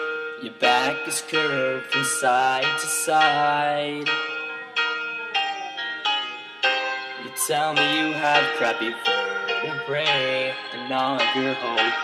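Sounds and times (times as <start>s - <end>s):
struck ringing chords: 0.0s - 12.0s.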